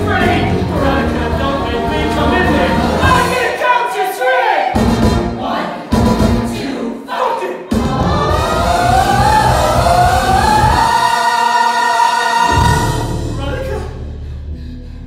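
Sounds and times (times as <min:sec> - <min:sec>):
stage musical singing with band: 0:00.0 - 0:13.8.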